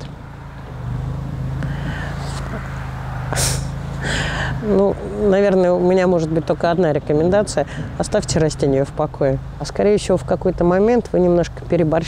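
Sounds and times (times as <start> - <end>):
vehicle engine humming: 0.0 - 12.0
short hiss: 3.3 - 3.7.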